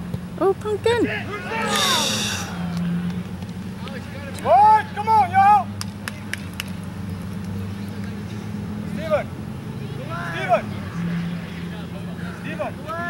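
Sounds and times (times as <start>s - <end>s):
players and spectators shouting: 0.8s - 3.2s, 4.3s - 5.8s, 8.9s - 10.9s, 12.1s - 13.0s.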